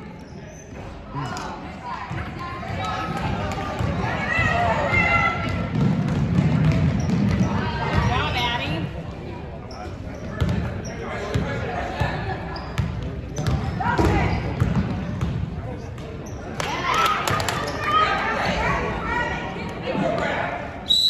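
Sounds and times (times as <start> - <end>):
sneakers squeaking: 0.0 - 1.4, 2.1 - 8.8, 9.6 - 16.7.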